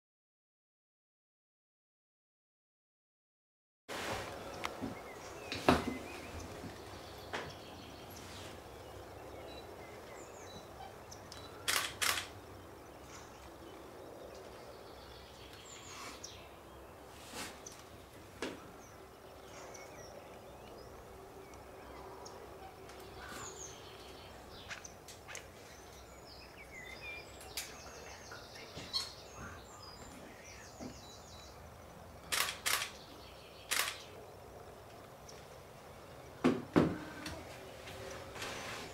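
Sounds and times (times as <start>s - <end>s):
camera shutter clicking: 11.6s - 12.4s, 32.3s - 33.0s, 33.7s - 34.1s.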